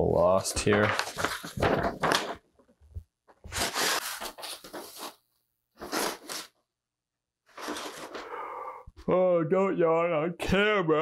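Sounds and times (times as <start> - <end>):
paper rustling and crinkling: 0.5 - 2.5, 3.4 - 5.2, 5.8 - 6.5, 7.5 - 8.2.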